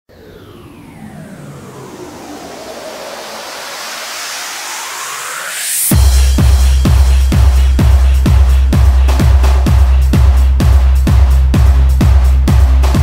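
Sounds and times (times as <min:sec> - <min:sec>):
synthesized noise riser: 0:00.1 - 0:13.0
heavy kick drum: 0:05.9 - 0:13.0.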